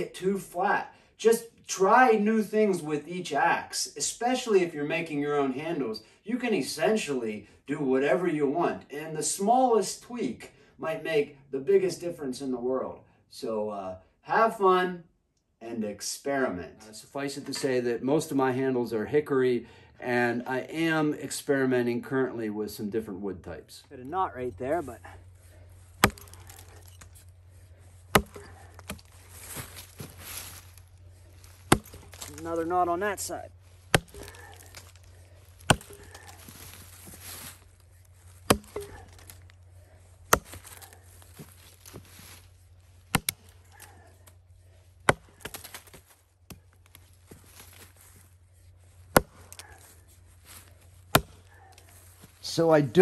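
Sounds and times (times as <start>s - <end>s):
axe chopping log: 26.0s - 27.2s, 28.0s - 30.1s, 31.5s - 37.6s, 38.3s - 39.5s, 40.2s - 42.1s, 43.1s - 44.3s, 45.0s - 47.1s, 49.0s - 50.0s, 51.0s - 52.0s.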